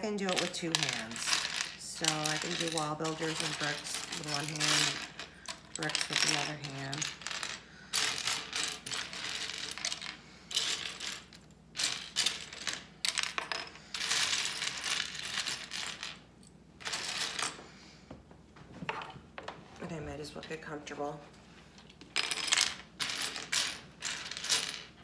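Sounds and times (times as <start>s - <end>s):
plastic bricks clattering on tray: 0.2s - 16.2s.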